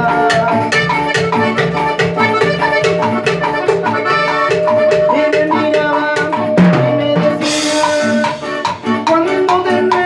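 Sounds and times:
accordion melody: 0.0 - 10.0
bass line: 0.0 - 10.0
quick percussion beat: 0.0 - 10.0.

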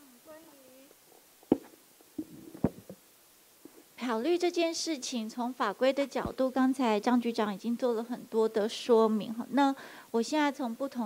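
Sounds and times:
microphone handling thumps: 1.4 - 3.0.

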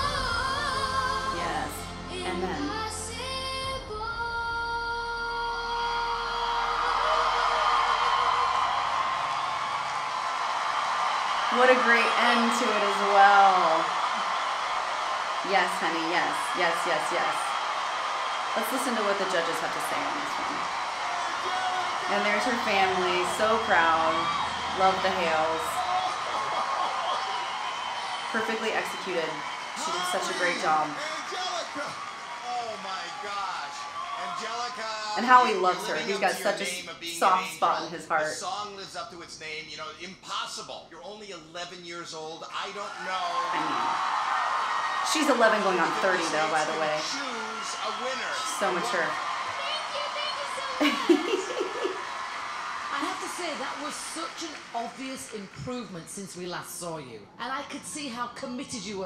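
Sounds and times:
audience cheering and applause: 0.0 - 3.9, 5.1 - 39.6, 42.2 - 56.3
girl singing a long note: 0.0 - 7.0
man speaking: 32.5 - 37.3, 38.2 - 43.8.

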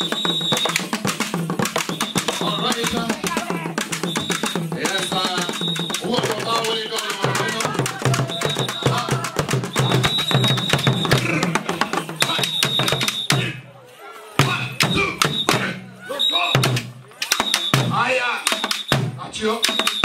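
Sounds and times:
drums beaten in fast rhythm: 0.0 - 13.7, 14.4 - 20.0
voices calling: 0.0 - 20.0.

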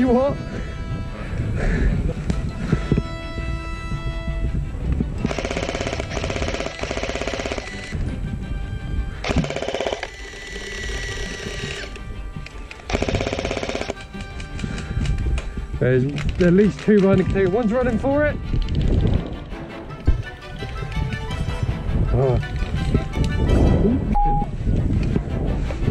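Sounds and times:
background music: 0.0 - 25.9
airsoft machine gun bursts: 5.3 - 7.9, 9.2 - 11.8, 12.9 - 14.0.

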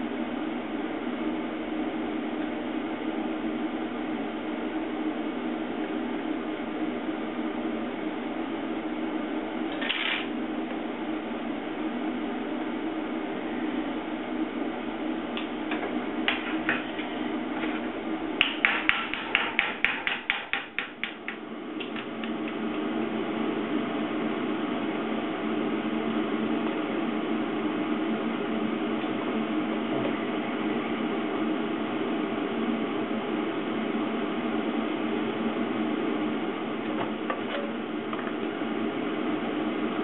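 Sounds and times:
steady even hum: 0.0 - 40.0
hammer striking sheet metal: 18.4 - 21.3.

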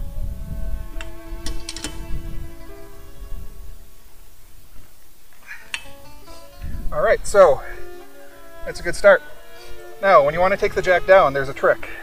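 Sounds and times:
soft background music: 0.0 - 4.4, 5.6 - 12.0
lug wrench clicking: 1.0 - 2.0, 5.7 - 6.0.

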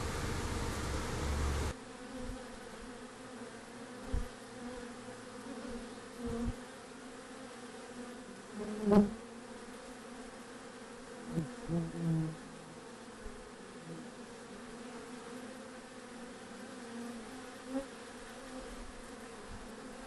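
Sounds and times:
bees buzzing: 0.0 - 20.0.

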